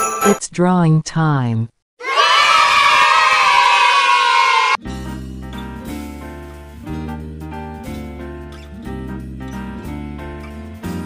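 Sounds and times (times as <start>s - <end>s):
children cheering: 2.0s - 4.8s
instrumental background music: 4.8s - 11.0s.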